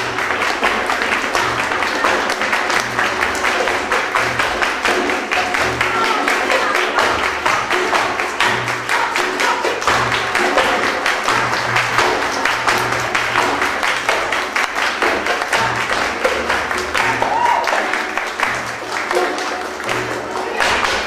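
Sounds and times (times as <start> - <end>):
dancer's feet striking stage: 0.0 - 21.0
frame drum: 0.0 - 21.0
people clapping: 0.0 - 21.0.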